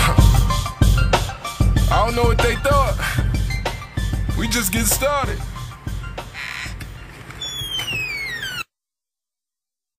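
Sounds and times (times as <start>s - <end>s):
hip hop beat with low bass: 0.0s - 6.3s.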